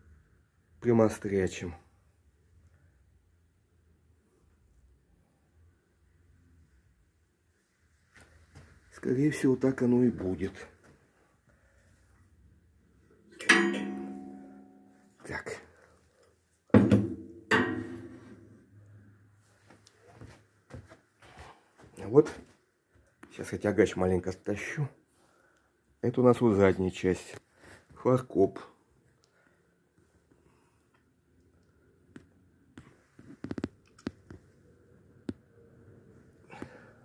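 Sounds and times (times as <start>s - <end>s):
metallic clanks: 13.4s - 14.9s, 16.8s - 18.5s.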